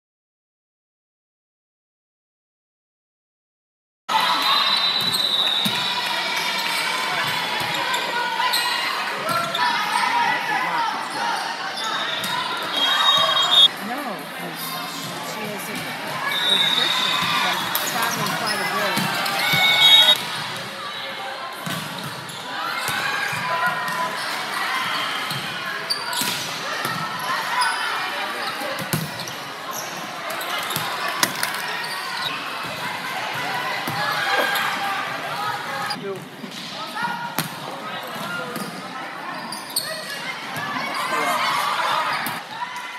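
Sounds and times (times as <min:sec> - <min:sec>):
people calling and shouting: 0:04.1 - 0:42.9
shrill high tones: 0:12.7 - 0:13.7, 0:19.4 - 0:20.2.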